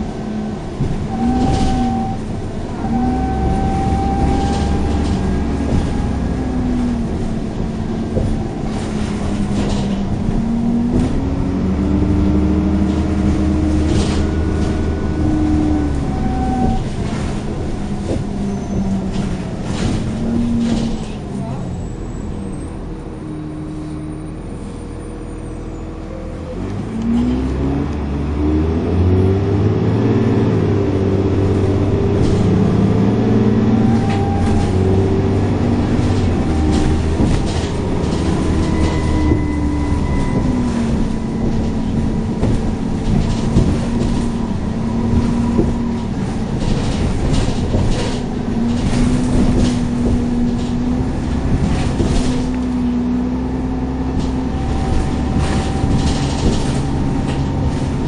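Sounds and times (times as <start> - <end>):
bus engine revving: 0.0 - 58.0.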